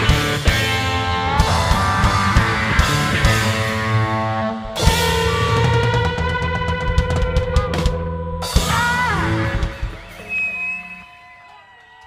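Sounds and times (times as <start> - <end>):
amplified instruments ringing: 8.2 - 11.5.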